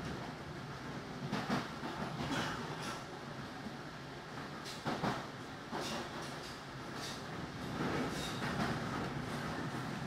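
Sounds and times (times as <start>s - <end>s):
train wheels rumbling on rail: 0.0s - 10.0s.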